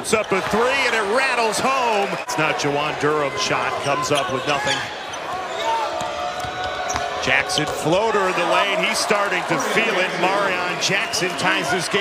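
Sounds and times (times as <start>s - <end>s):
arena crowd noise: 0.0s - 12.0s
shoe squeaks: 3.7s - 5.7s.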